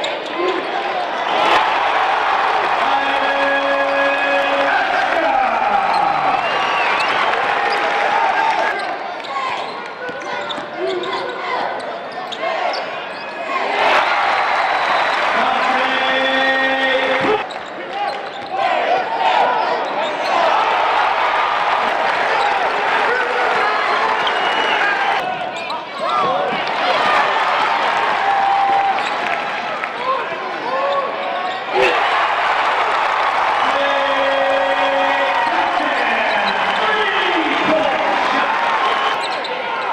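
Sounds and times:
crowd noise and voices: 0.0 - 39.9.

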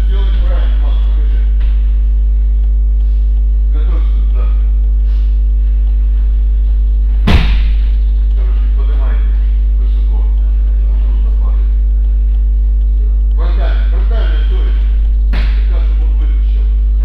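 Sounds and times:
electrical mains hum: 0.0 - 17.0
sharp thud: 7.1 - 8.0, 15.3 - 15.7.

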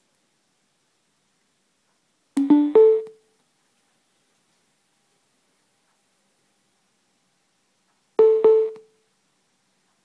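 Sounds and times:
electronic chime: 2.4 - 3.1.

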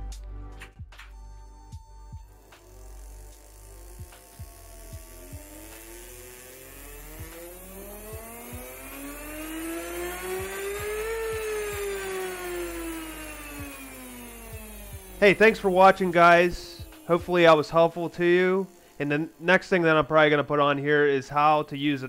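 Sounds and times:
electric motor whining: 1.0 - 22.0.

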